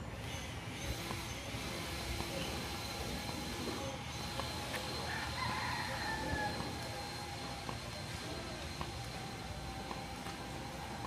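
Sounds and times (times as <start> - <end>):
low street hum: 0.0 - 11.0
rooster crowing: 5.0 - 7.1.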